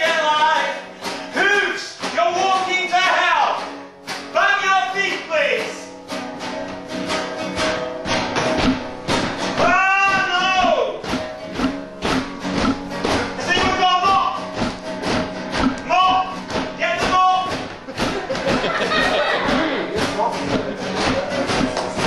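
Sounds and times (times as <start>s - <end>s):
percussive acoustic guitar strumming: 0.0s - 22.0s.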